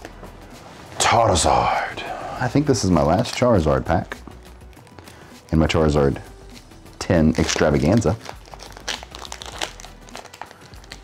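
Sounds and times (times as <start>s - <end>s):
foil wrapper crinkling: 7.0s - 11.0s.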